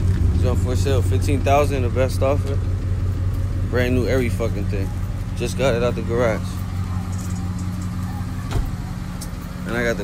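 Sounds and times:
pickup engine idling: 0.0 - 10.0.

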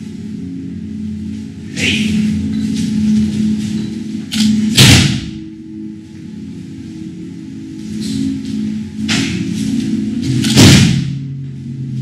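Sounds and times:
background music with low drone: 0.0 - 12.0
body thumping on mat: 10.5 - 11.2.

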